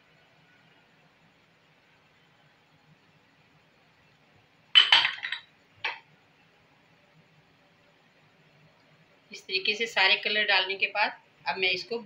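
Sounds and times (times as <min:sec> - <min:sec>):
glass bowl clinking on metal: 0:04.8 - 0:05.5.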